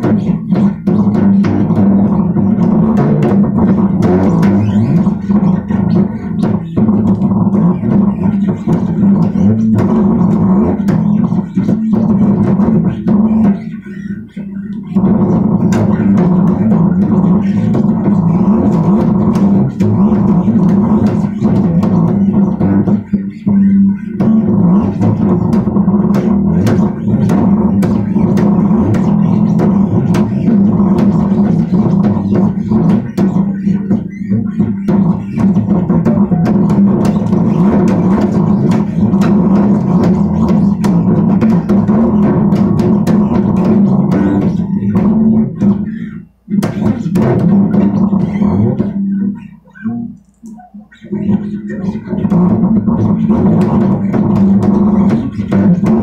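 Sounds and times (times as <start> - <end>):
bass guitar plucked notes: 0.0 - 56.0.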